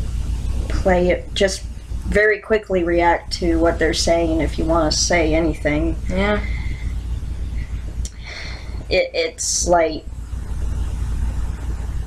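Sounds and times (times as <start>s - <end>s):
even hiss: 0.0s - 12.0s
low rumble: 0.0s - 12.0s.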